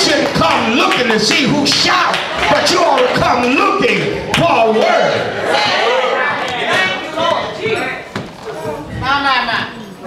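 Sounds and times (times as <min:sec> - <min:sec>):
unclear voices: 0:00.0 - 0:10.0.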